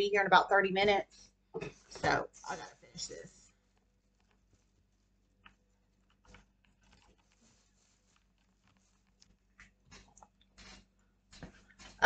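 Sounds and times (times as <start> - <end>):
faint clicks and rustles: 0.9 - 12.0.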